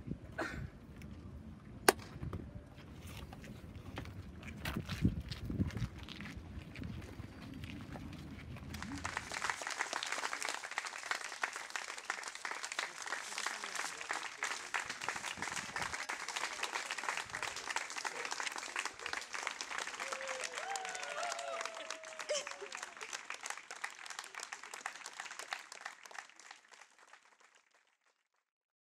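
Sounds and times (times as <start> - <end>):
audience applauding: 8.7 - 28.0.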